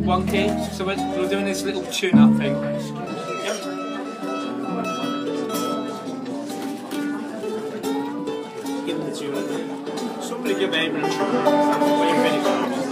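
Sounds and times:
banjo strings picked: 0:00.0 - 0:12.9.

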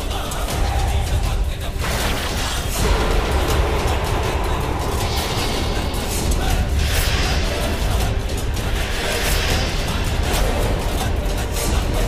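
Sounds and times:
dramatic bass-heavy drone score: 0:00.0 - 0:12.0.

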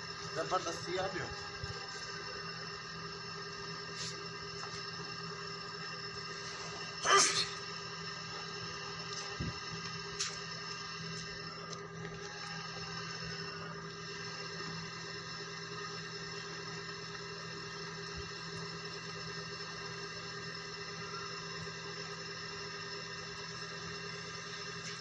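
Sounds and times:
steady machine drone: 0:00.0 - 0:25.0.

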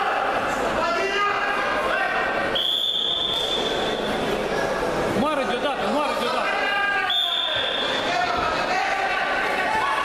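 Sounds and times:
voices in echoing hall: 0:00.0 - 0:10.0.

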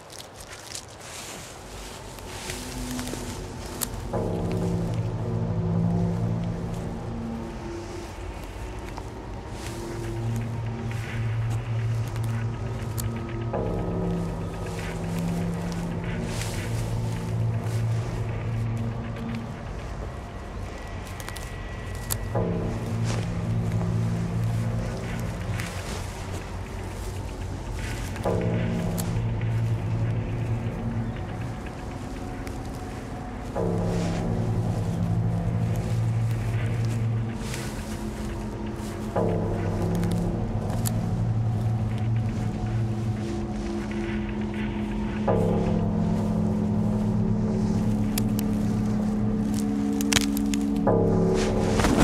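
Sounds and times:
tense film score: 0:00.0 - 0:52.0.

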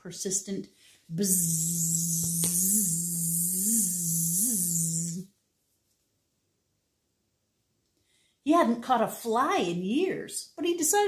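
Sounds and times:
woman imitating fly buzzing: 0:01.1 - 0:05.3.

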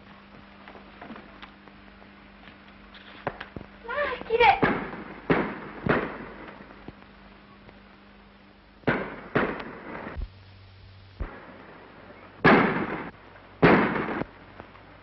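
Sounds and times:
sharp bangs with ringing tail: 0:04.6 - 0:06.7, 0:08.8 - 0:10.2, 0:11.2 - 0:14.3.

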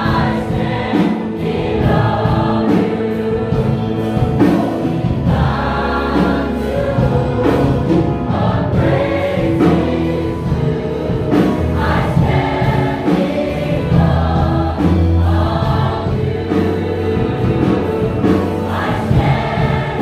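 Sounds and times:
mixed choir singing gospel song: 0:00.0 - 0:20.0.

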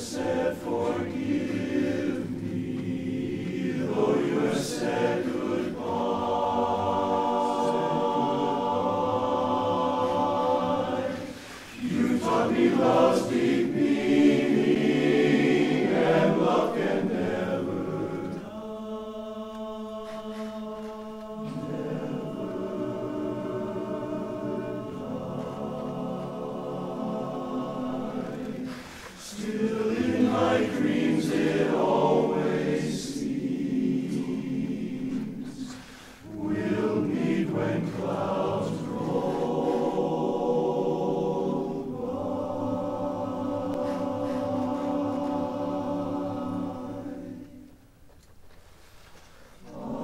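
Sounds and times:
men's chorus singing a cappella: 0:00.0 - 0:47.8, 0:49.6 - 0:50.0.

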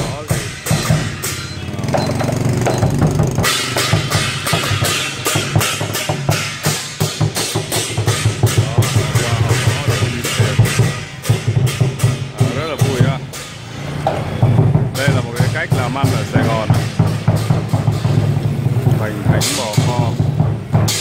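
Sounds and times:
big drum beating: 0:00.0 - 0:21.0
cymbals clashing: 0:00.0 - 0:21.0.

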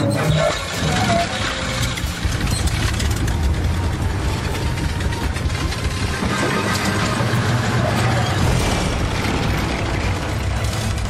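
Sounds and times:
biplane engine clattering: 0:00.0 - 0:11.0.

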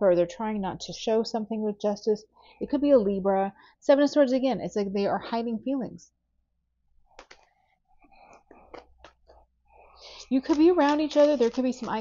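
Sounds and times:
cards clicking: 0:10.1 - 0:12.0
cards sliding and tapping: 0:10.1 - 0:12.0.

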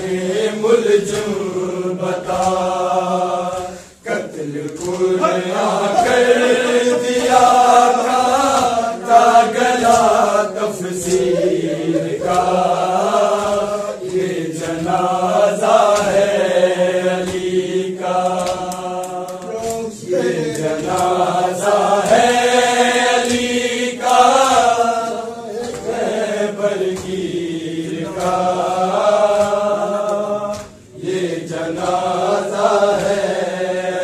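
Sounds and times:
men chanting a mourning lament: 0:00.0 - 0:34.0.

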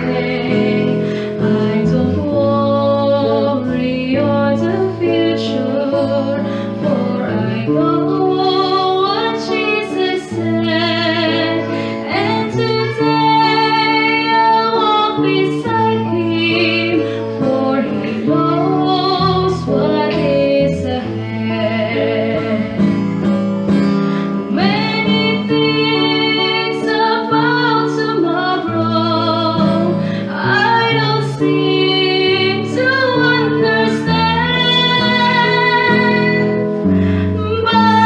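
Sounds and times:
woman singing gospel: 0:00.0 - 0:23.0, 0:24.5 - 0:38.0
plucked strings: 0:00.0 - 0:38.0.

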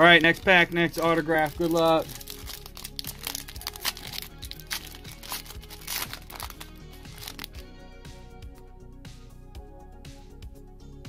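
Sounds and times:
foil wrapper crinkling: 0:00.0 - 0:07.6
quiet background music: 0:00.0 - 0:11.0.

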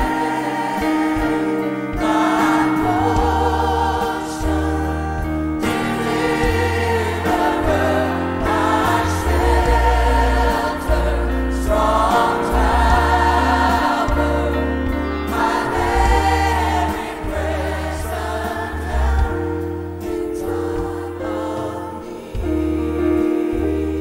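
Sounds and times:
band playing: 0:00.0 - 0:24.0
electric bass line: 0:00.0 - 0:24.0
group of singers: 0:00.0 - 0:24.0.

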